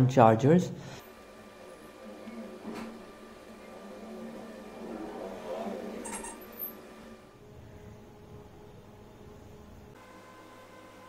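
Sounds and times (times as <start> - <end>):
low steady hum: 0.4 - 11.0.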